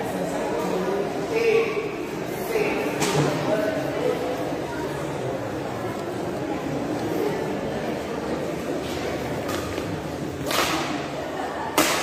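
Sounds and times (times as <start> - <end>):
murmur of spectators: 0.0 - 12.0.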